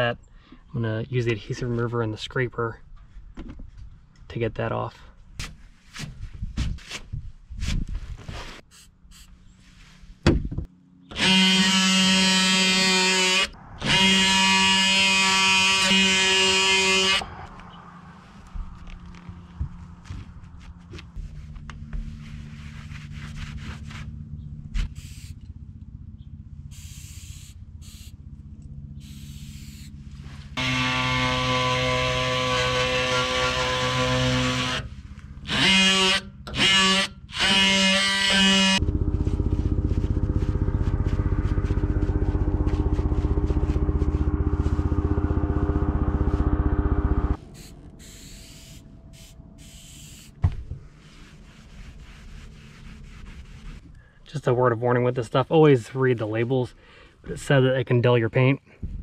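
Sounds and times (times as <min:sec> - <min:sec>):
low hum: 0:09.0 - 0:55.3
oscillating multi-tool scraping: 0:11.1 - 0:17.5, 0:30.6 - 0:50.4.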